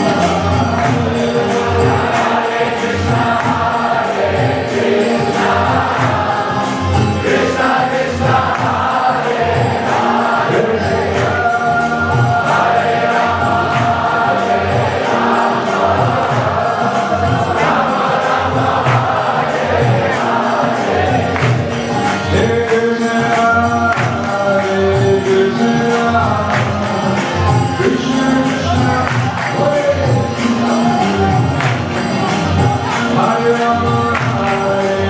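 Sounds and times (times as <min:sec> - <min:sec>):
crowd chanting: 0:00.0 - 0:35.0
drums: 0:00.0 - 0:35.0.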